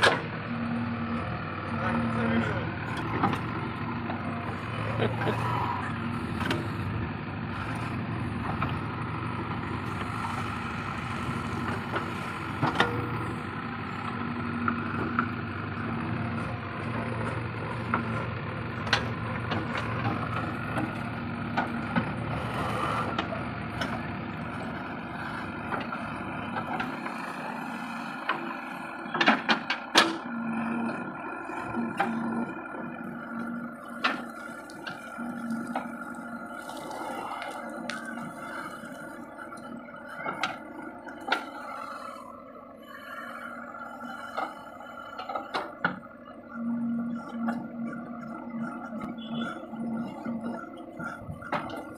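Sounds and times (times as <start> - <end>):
diesel engine running under load: 0.0 - 51.9.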